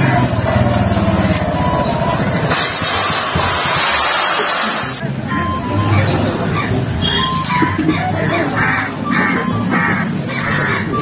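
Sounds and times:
motorcycle engine running: 0:00.0 - 0:04.2
hiss: 0:02.5 - 0:05.0.

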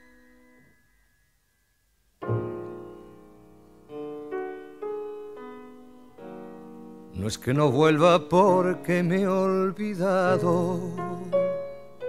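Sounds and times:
piano notes ringing: 0:00.0 - 0:12.0.

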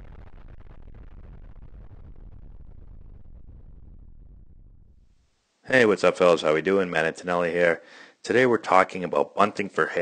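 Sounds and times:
low rumble: 0:00.0 - 0:05.2.

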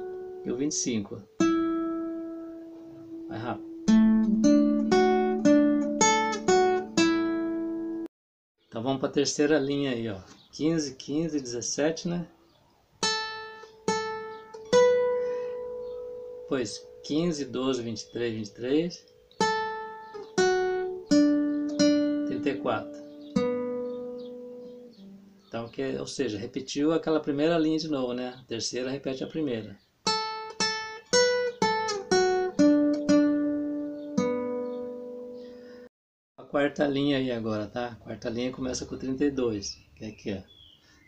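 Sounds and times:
classical guitar notes: 0:00.0 - 0:00.6, 0:01.2 - 0:08.1, 0:13.0 - 0:25.6, 0:30.0 - 0:35.6.

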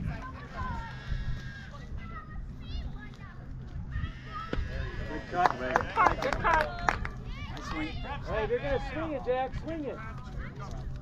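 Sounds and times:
faint chatter: 0:00.0 - 0:11.0.

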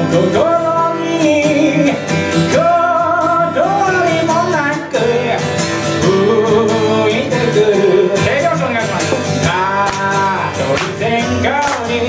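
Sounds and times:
man singing: 0:00.0 - 0:12.0
strummed acoustic guitar: 0:00.0 - 0:12.0.

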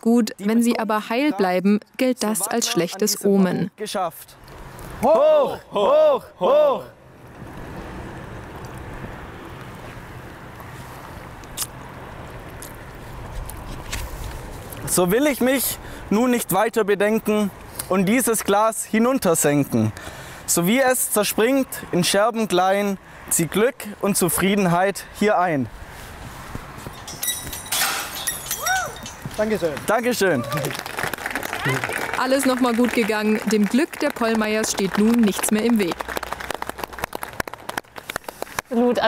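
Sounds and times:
wine glass shattering on gravel: 0:27.0 - 0:29.5.

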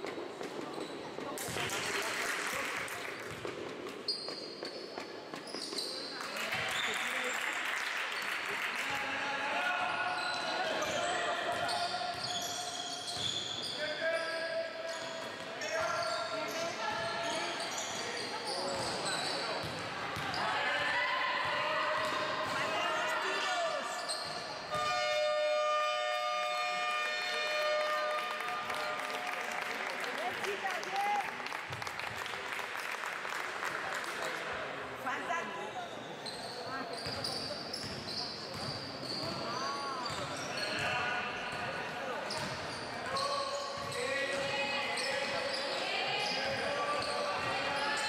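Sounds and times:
shoes squeaking: 0:03.9 - 0:06.9.

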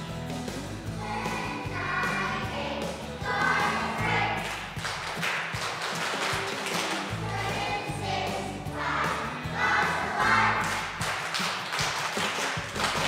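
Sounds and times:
instrumental accompaniment: 0:00.0 - 0:13.0
children's choir singing: 0:00.9 - 0:04.8, 0:06.7 - 0:11.1.

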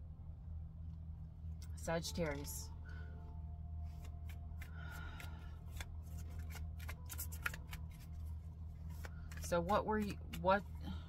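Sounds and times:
cards being shuffled: 0:03.8 - 0:10.8.

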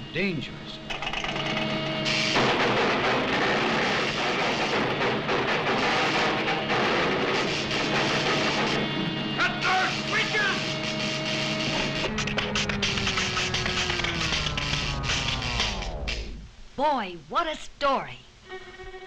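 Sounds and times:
dense sound effects: 0:02.2 - 0:16.8.

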